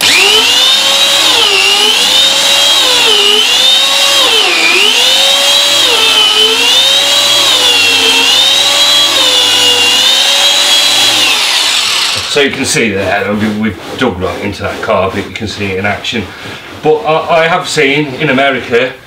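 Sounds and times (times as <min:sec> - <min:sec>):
carpet shearing machine whining: 0:00.0 - 0:12.5.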